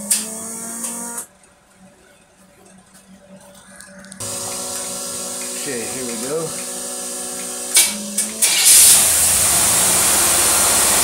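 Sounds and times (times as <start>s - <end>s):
starter motor cranking engine: 4.2s - 11.0s.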